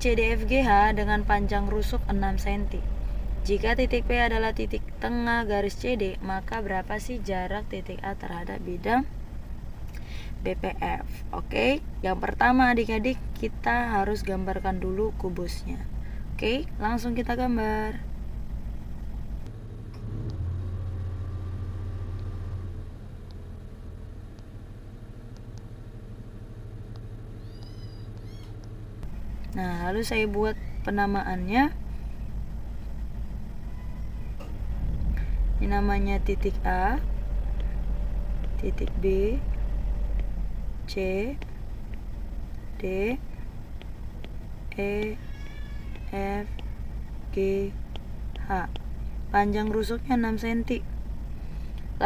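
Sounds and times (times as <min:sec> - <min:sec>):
low engine-like rumble: 0:00.0 - 0:52.0
steady low hum: 0:00.0 - 0:52.0.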